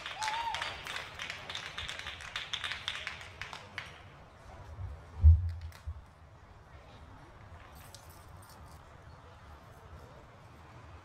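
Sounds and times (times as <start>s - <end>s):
low steady arena rumble: 0.0s - 11.0s.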